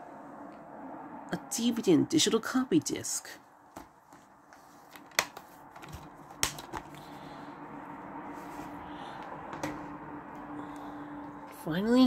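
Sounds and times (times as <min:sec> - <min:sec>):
faint steady hum: 0:00.0 - 0:12.0
plastic case clicks: 0:04.9 - 0:06.9.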